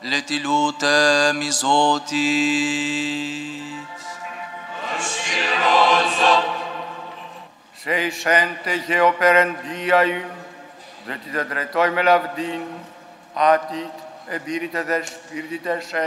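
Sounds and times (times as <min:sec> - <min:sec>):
church chant singing: 0:00.0 - 0:10.3.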